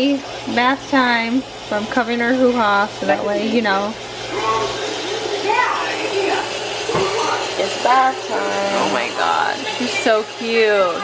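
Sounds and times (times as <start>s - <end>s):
faucet water splashing into sink: 0.0s - 11.0s.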